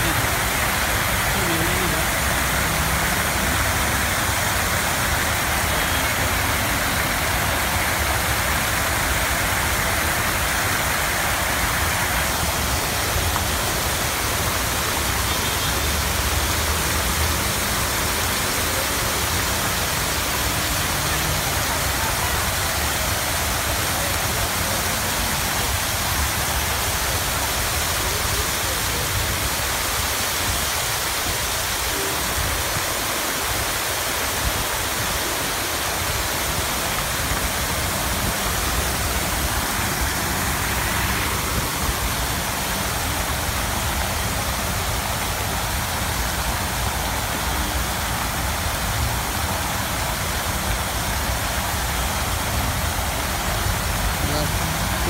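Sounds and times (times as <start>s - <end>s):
fountain water splashing: 0.0s - 55.0s.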